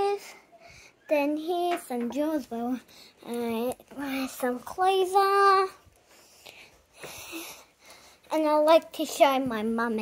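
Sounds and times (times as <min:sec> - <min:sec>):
girl breathing: 0:00.1 - 0:01.1, 0:02.8 - 0:03.3, 0:06.0 - 0:08.3
girl speaking: 0:01.1 - 0:05.8, 0:08.3 - 0:10.0.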